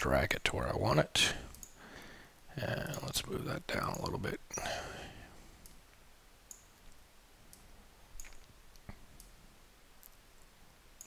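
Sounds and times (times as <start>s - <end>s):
computer mouse clicks: 1.5s - 1.8s, 6.5s - 7.6s, 8.2s - 9.3s.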